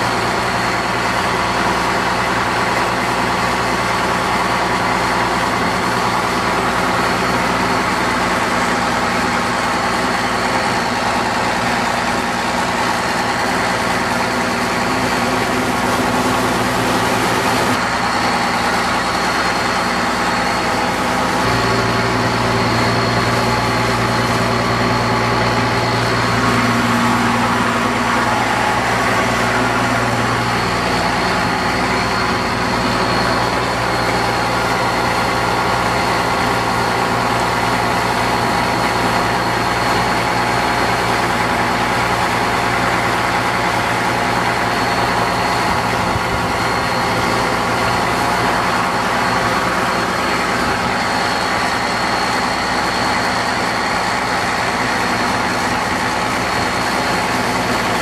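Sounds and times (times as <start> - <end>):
boat motor running: 0.0 - 58.0
rushing noise: 12.7 - 58.0.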